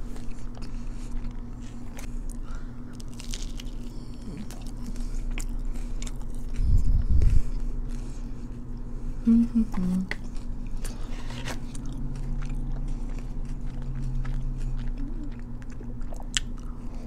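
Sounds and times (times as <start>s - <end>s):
crunchy chewing: 0.0s - 9.0s, 10.2s - 17.0s
low rumble: 6.3s - 8.0s.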